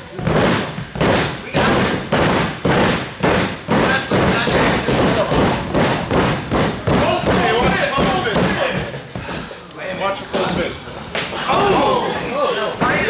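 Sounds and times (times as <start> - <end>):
bodies thudding on ring canvas: 0.0 - 9.4.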